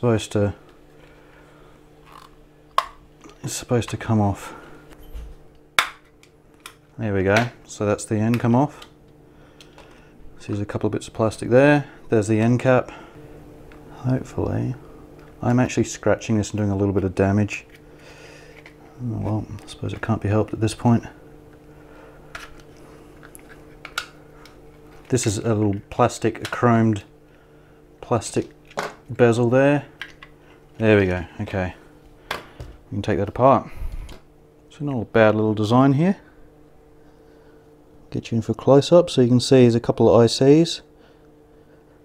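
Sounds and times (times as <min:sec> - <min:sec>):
low hum: 0:00.0 - 0:39.5
sharp plastic snap: 0:05.8 - 0:06.8.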